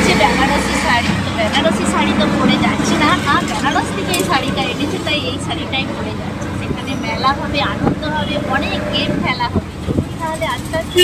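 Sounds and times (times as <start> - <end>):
auto-rickshaw engine hum: 0.0 - 11.0
woman talking: 0.0 - 11.0.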